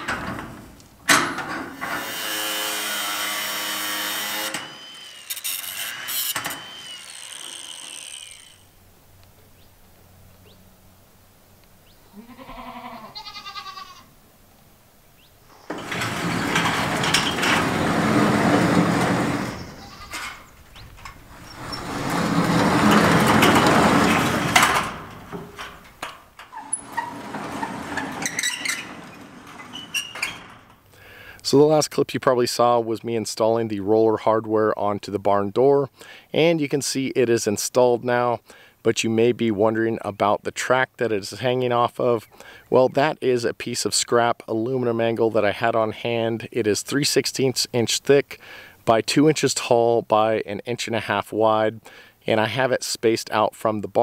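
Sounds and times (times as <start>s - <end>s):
metal hardware clanking: 0.0s - 2.0s, 15.5s - 30.9s
metal door rolling on track: 0.0s - 7.0s, 15.5s - 30.9s
goat bleating: 12.1s - 14.1s, 19.7s - 20.2s.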